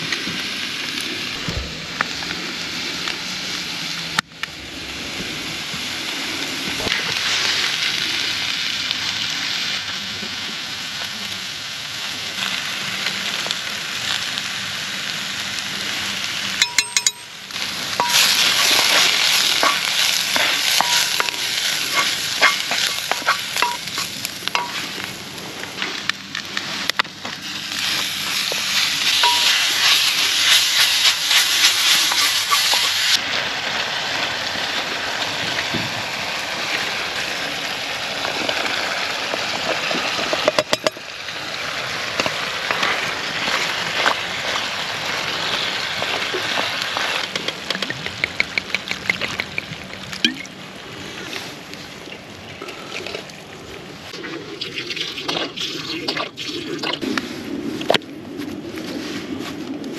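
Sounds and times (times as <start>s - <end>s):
food sizzling in a pot: 7.0s - 25.4s, 27.4s - 47.2s.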